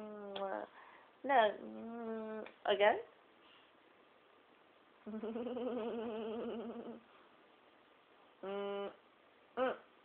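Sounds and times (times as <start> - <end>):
person humming: 0.0 - 0.7, 1.6 - 2.5, 5.0 - 7.0, 8.4 - 9.0, 9.6 - 9.9.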